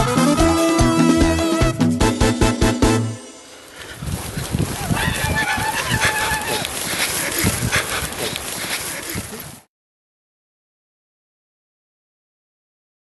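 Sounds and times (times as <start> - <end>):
banda music: 0.0 - 3.4
long high cry: 4.9 - 6.8.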